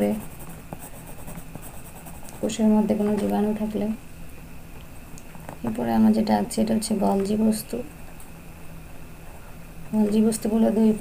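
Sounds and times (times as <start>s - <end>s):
pencil scratching on paper: 0.0s - 2.6s.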